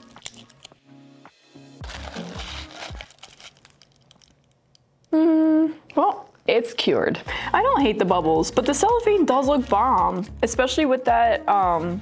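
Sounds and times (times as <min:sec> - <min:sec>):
background music: 0:00.0 - 0:03.5, 0:07.2 - 0:12.0
resin tray crinkling and crackling: 0:01.9 - 0:04.6.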